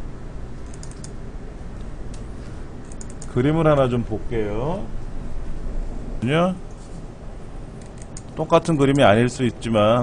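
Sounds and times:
low room hum: 0.0 - 10.0
computer mouse clicks: 0.6 - 1.2, 1.8 - 3.4, 7.8 - 9.1.

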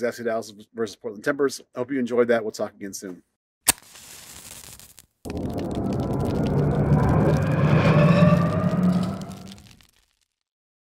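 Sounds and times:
fire burst rumble with rising whine: 5.3 - 9.9.

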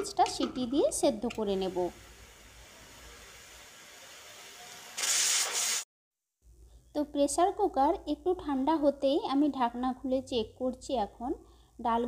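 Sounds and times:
pressure cooker steam hissing: 0.6 - 5.8
loud high-pitched steam burst: 1.6 - 5.8.

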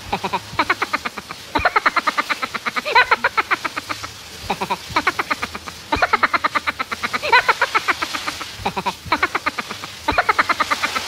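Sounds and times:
shower spray hissing: 0.0 - 11.0.

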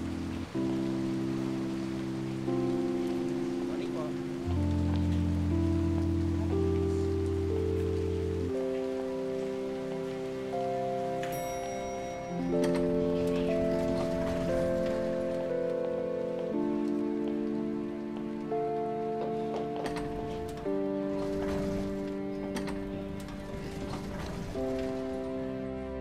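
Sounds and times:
rain hissing: 0.0 - 25.9
slow sustained orchestral chords: 0.0 - 26.0
bright chime: 11.2 - 14.5.

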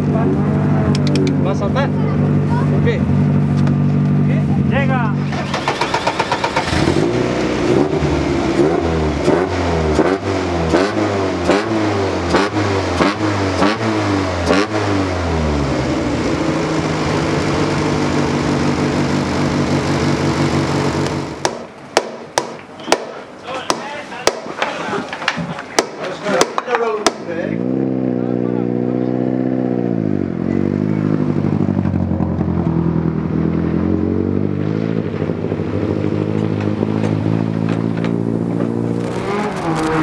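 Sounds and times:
race car engine revving: 0.0 - 21.5, 27.1 - 40.0
sharp knocks: 21.4 - 24.7.

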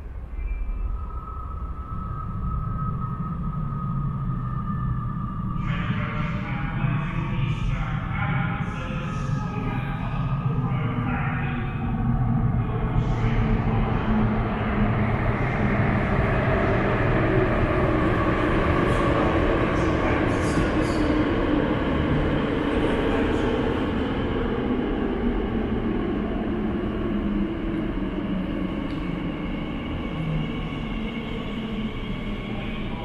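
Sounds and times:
train rumble: 5.2 - 33.0.

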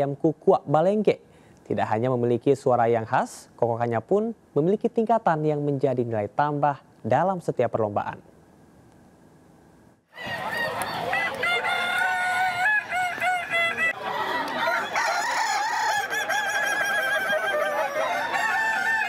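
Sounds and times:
roosters crowing: 10.1 - 19.0.

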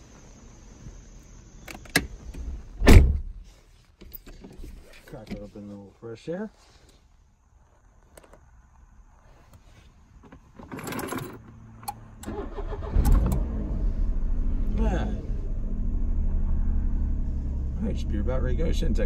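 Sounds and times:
car engine cranking and idling: 8.0 - 19.0.

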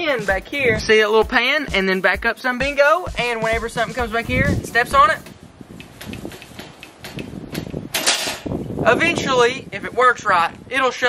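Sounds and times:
cage trap door slamming shut: 7.9 - 8.5.

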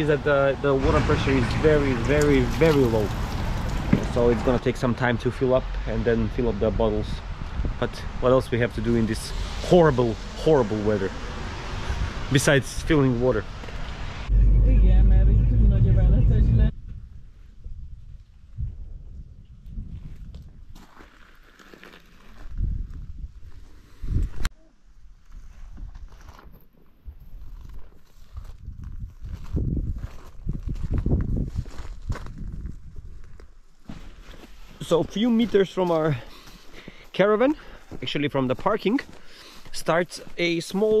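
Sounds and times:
car road rumble on wet road: 0.0 - 6.7.

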